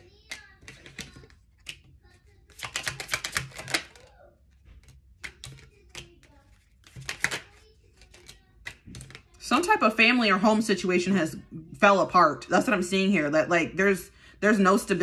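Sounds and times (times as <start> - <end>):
cards shuffling and clicking: 0.0 - 9.4
cards tapping on wooden table: 0.3 - 1.9, 2.5 - 4.1, 4.7 - 9.2.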